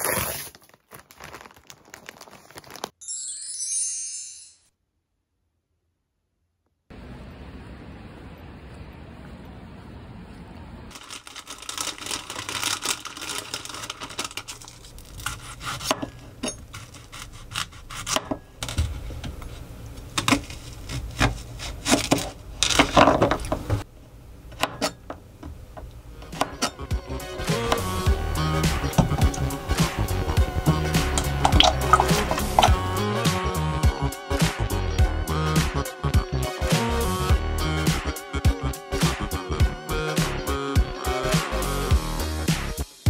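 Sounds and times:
background music with steady beat: 26.3 - 43.0.

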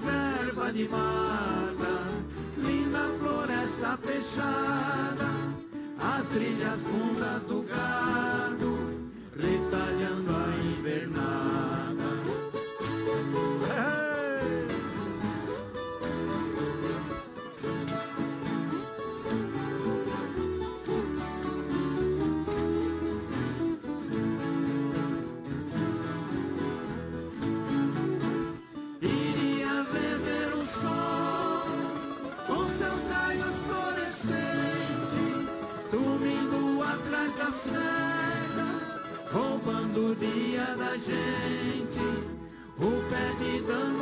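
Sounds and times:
folk guitars plucked together: 0.0 - 44.0.

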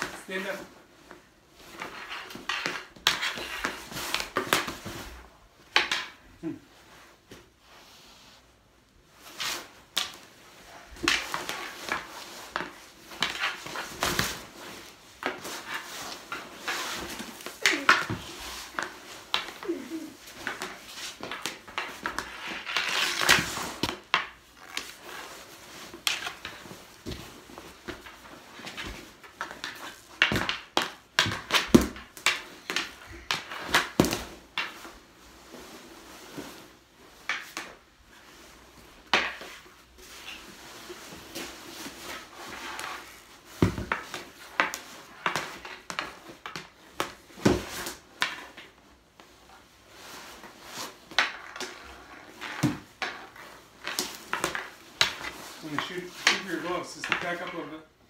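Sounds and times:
rustling of goalie gear: 0.0 - 58.0
hockey stick striking ball: 27.9 - 34.8.

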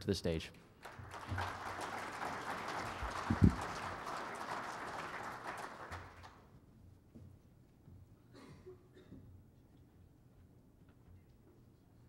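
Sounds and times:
audience applause: 0.8 - 6.4.

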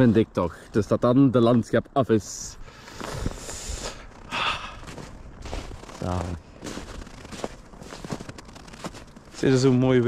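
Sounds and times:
person breathing close: 2.6 - 5.0.

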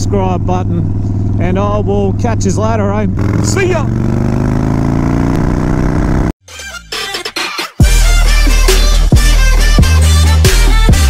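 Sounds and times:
motorcycle engine pulling: 0.0 - 6.3
electronic music: 6.5 - 11.0.

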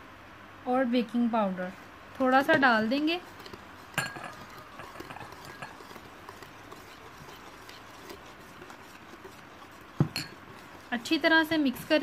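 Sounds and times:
whisk clinking against bowl: 2.4 - 12.0.

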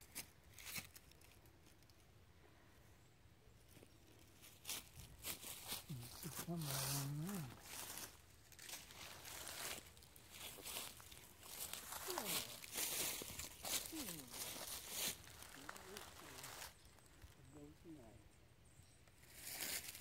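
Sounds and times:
footsteps through dry leaves: 0.0 - 1.4, 4.2 - 17.3, 19.2 - 20.0
person humming: 5.9 - 7.6, 11.8 - 12.6, 13.8 - 14.6, 15.5 - 16.5.

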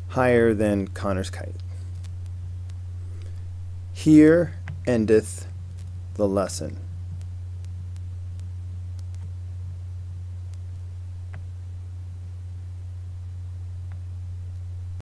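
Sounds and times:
low electrical hum: 0.0 - 15.0
faint clicks: 7.1 - 9.4, 10.5 - 11.5.

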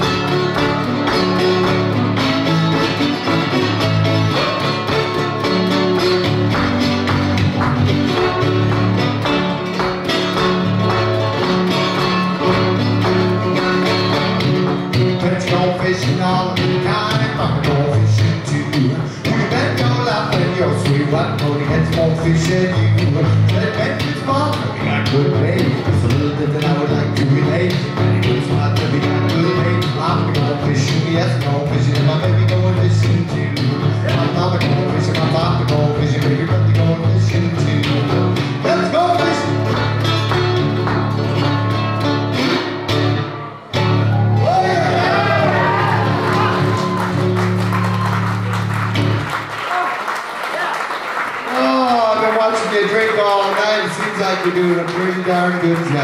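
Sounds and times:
resonator guitar blues: 0.0 - 49.6
audience applauding: 4.4 - 14.2, 44.1 - 56.0
man singing: 15.0 - 40.0
man speaking: 51.5 - 56.0.

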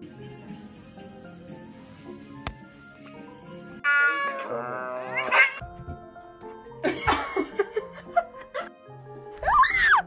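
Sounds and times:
light background music: 0.0 - 10.0
cat meowing: 3.8 - 5.6.

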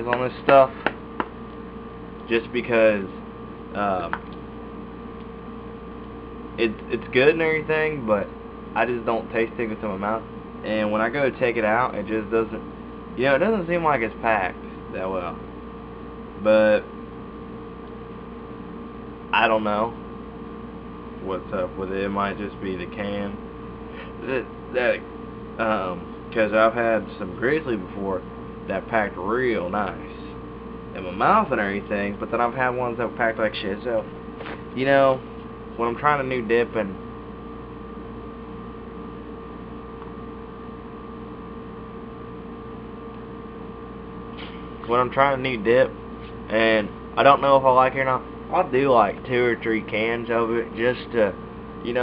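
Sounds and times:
electrical hum: 0.0 - 52.0
faint constant tones: 0.0 - 52.0.

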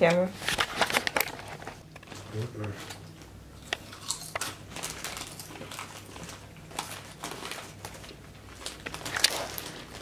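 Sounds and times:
potato chips crunching: 3.6 - 10.0.

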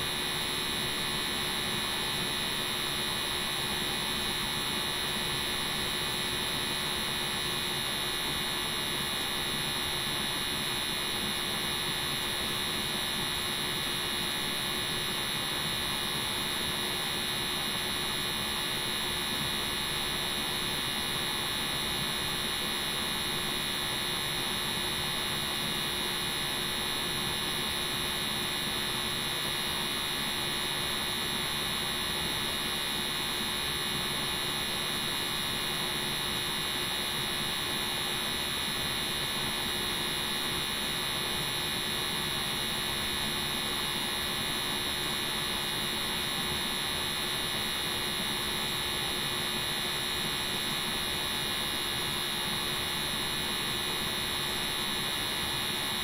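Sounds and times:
high steady whine: 0.0 - 56.0.

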